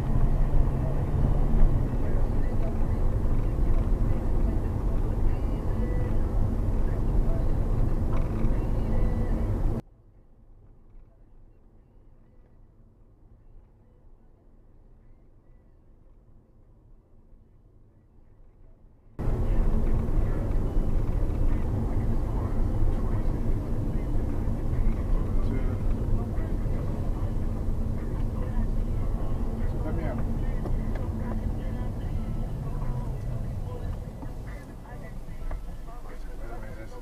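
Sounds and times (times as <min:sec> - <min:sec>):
car road and cabin noise: 0:00.0 - 0:09.8, 0:19.2 - 0:37.0
indistinct voices: 0:19.2 - 0:37.0.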